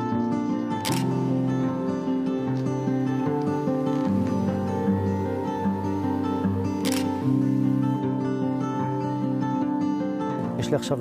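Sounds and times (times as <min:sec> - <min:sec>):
background music: 0:00.0 - 0:11.0
camera shutter click: 0:00.8 - 0:01.4, 0:06.8 - 0:07.4.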